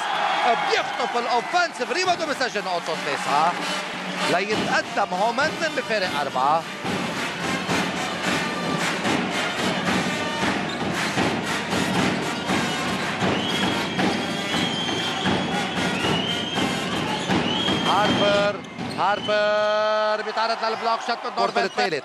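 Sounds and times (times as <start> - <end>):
crowd clapping and cheering: 0.0 - 22.0
brass playing high notes: 2.8 - 10.7
bass drums beating: 4.2 - 19.3.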